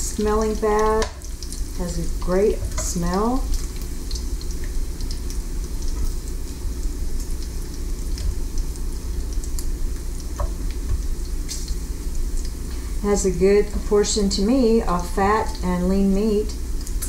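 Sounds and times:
bacon sizzling: 0.0 - 17.0
steady low hum: 0.0 - 17.0.

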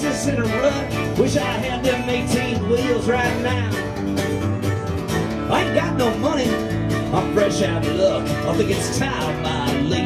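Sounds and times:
country band playing: 0.0 - 10.0
upright bass: 0.0 - 10.0.

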